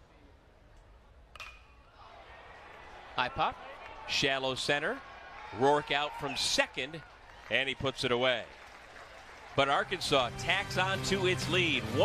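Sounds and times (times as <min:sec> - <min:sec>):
metal bat hitting ball: 0:01.3 - 0:01.8.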